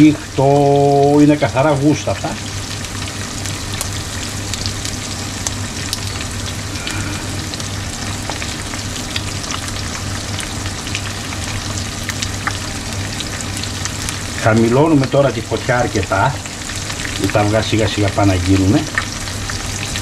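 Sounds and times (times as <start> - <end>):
eggs sizzling in oil: 0.0 - 20.0
low steady hum: 0.0 - 20.0.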